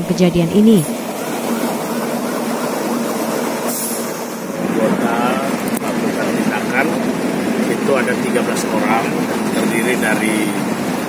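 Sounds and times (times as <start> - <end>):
water cannon and hoses spraying: 1.0 - 11.0
faint voices: 4.6 - 10.7.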